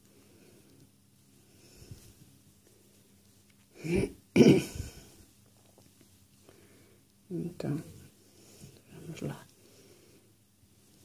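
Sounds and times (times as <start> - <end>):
woman coughing: 3.8 - 5.0.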